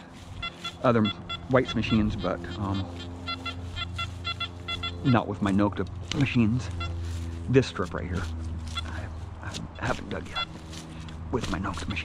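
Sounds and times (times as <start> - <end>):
steady low hum: 0.0 - 12.0
metal detector short high beeps: 0.4 - 5.2, 10.4 - 10.6.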